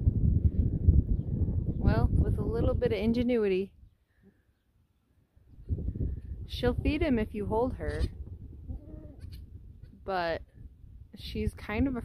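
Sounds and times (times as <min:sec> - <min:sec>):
goat bleating: 0:08.7 - 0:09.4.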